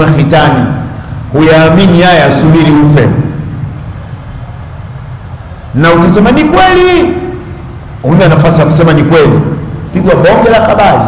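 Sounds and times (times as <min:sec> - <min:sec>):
faint hiss: 0:00.0 - 0:11.0
low background rumble: 0:00.0 - 0:11.0.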